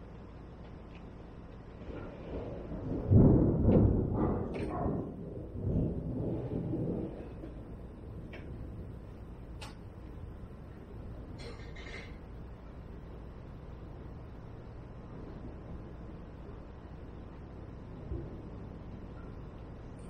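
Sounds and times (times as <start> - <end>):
thunder rumbling: 1.3 - 20.0.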